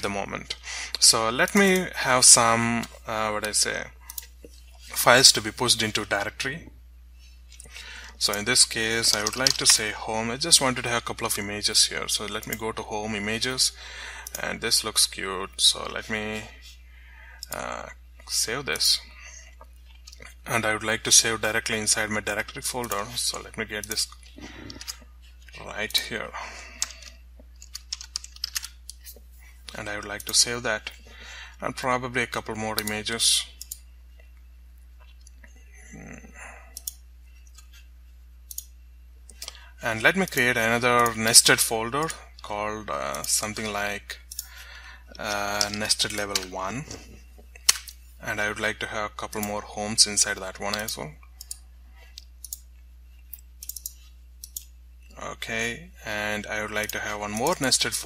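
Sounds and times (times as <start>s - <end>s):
low electrical hum: 0.0s - 58.0s
computer mouse clicking: 3.4s - 4.4s, 26.8s - 29.2s, 32.8s - 33.0s, 36.7s - 37.8s, 38.5s - 38.7s, 44.3s - 44.5s, 50.7s - 52.7s, 53.3s - 54.7s
typing on computer keyboard: 25.9s - 28.8s.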